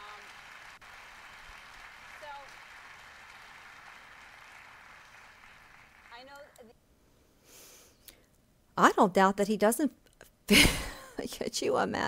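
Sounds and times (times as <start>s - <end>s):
faint studio audience applause: 0.0s - 6.6s.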